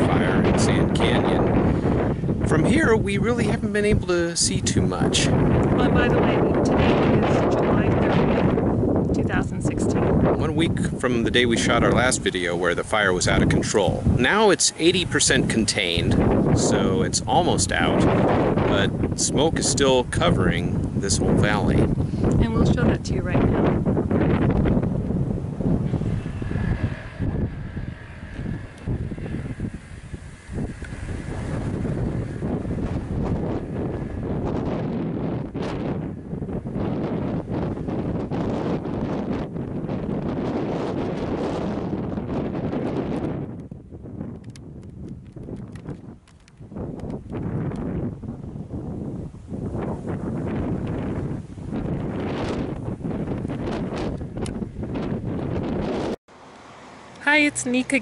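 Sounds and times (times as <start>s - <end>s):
wind buffeting microphone: 0.0s - 56.2s, 57.2s - 58.0s.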